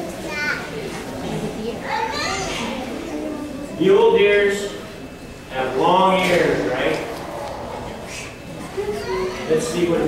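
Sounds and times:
children chattering and calling out: 0.0 - 10.0
child's rising cry: 8.8 - 9.6.

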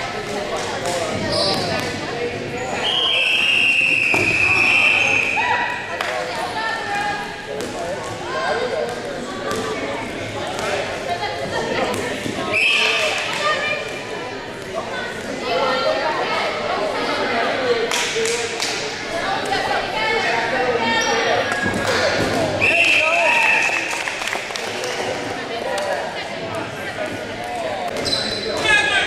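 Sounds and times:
players' voices: 0.0 - 29.0
shrill whistle blast: 2.8 - 5.5, 22.6 - 23.8.

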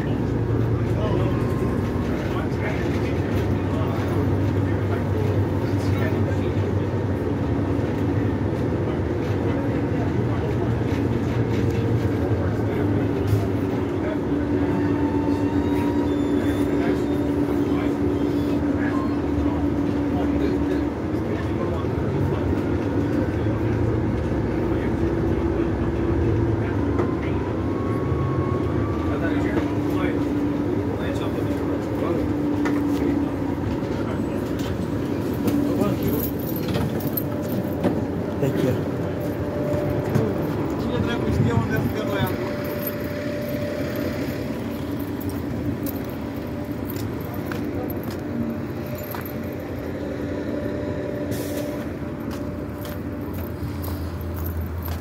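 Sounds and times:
bus engine running: 0.0 - 55.0
road rumble: 0.0 - 55.0.

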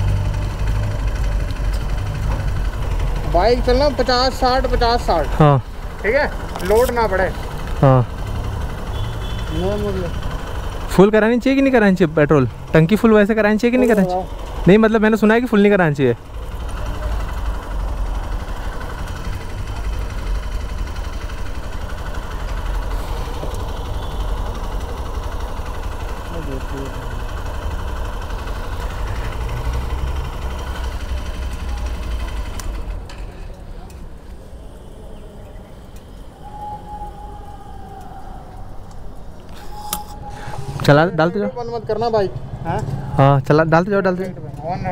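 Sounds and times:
fuel pump dispensing fuel: 0.0 - 44.9.

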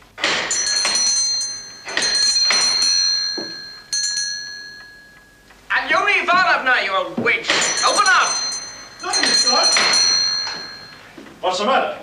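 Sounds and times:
doorbell ringing: 0.3 - 6.6, 7.5 - 11.3.

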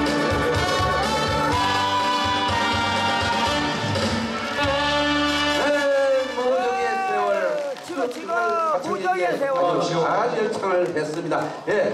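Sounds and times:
live band playing: 0.0 - 7.6.

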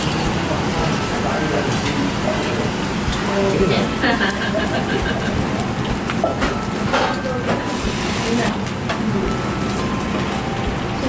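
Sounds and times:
food sizzling on a griddle: 0.1 - 8.7.

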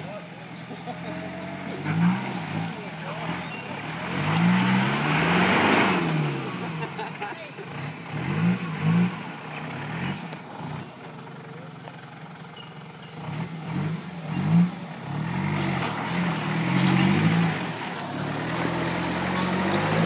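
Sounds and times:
engine revving up and down: 0.9 - 7.0, 7.6 - 11.0, 13.2 - 20.0.

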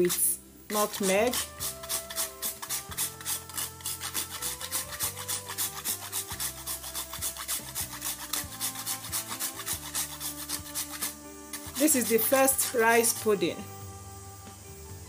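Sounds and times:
nutmeg scraping on metal grater: 0.0 - 13.4.

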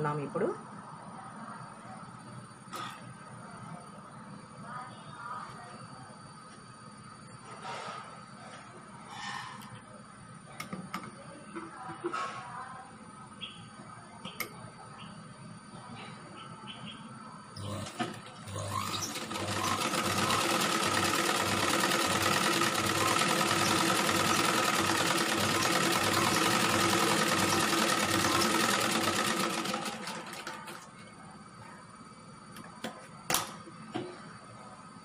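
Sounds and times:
sewing machine stitching: 17.6 - 30.8.

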